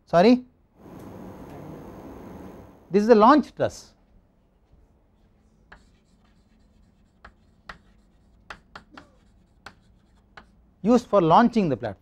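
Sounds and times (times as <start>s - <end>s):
chalk writing on blackboard: 5.2s - 10.6s.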